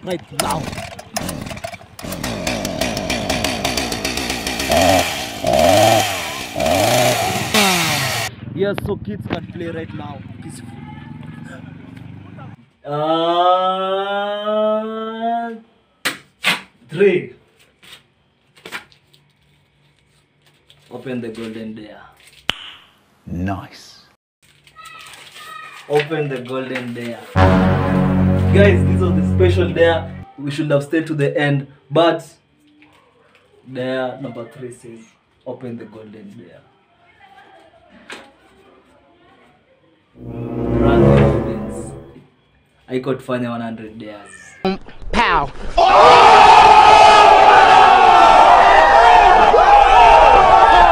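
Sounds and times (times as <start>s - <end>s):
paper card rustling: 17.6s - 21.6s, 24.4s - 27.3s
swelling musical sound effect: 27.4s - 30.2s, 40.2s - 42.2s.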